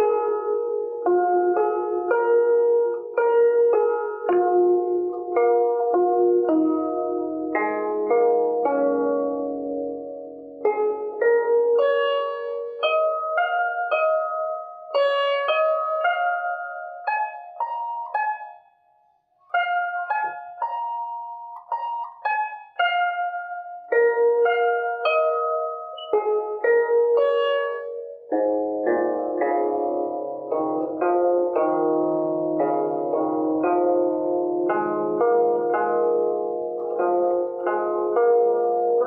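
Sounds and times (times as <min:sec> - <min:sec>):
zither plucked notes: 0:00.0 - 0:18.8, 0:19.4 - 0:39.0.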